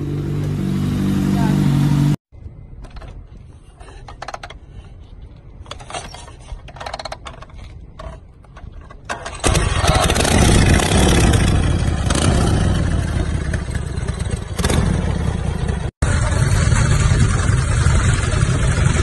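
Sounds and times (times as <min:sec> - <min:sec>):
motorcycle engine running: 0:00.0 - 0:02.2, 0:09.4 - 0:19.0
motorcycle engine kick-started: 0:09.1 - 0:19.0.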